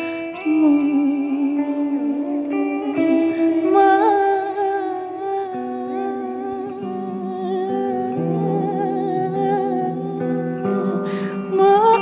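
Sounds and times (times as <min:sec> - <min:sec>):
slow electric guitar chords: 0:00.0 - 0:12.0.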